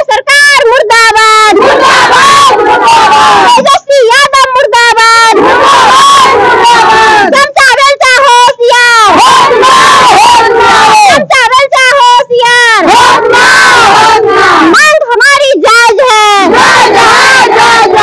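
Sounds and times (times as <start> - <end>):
women chanting slogans: 0.0 - 18.0.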